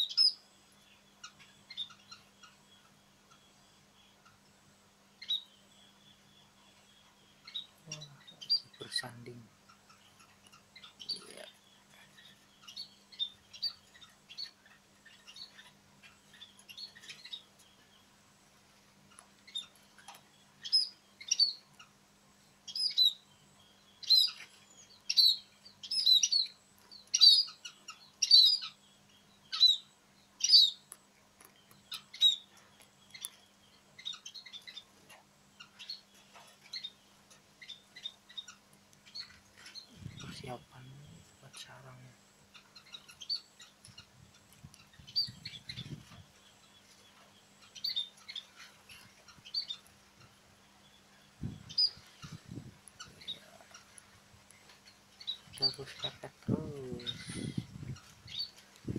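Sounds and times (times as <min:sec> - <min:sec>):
birds chirping: 0:00.0 - 0:58.9.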